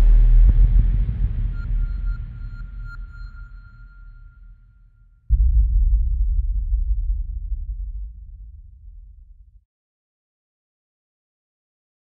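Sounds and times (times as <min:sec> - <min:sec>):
deep rumble: 0:00.0 - 0:04.5, 0:05.3 - 0:09.6
high ringing tone: 0:01.6 - 0:04.8.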